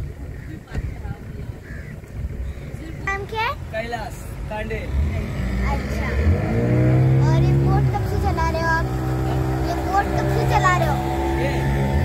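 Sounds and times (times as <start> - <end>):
boat engine running: 4.4 - 12.0.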